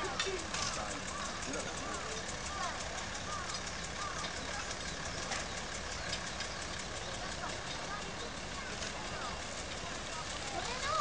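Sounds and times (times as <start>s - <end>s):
distant locomotive engine running: 0.0s - 11.0s
faint voices: 0.0s - 11.0s.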